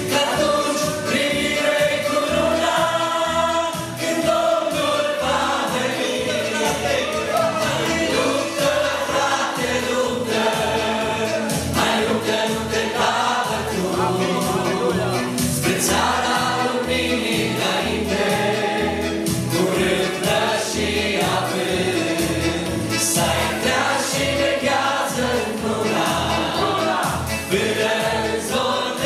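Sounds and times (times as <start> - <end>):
backing voices: 0.0 - 29.0
band accompaniment: 0.0 - 29.0
man and woman singing: 0.0 - 29.0.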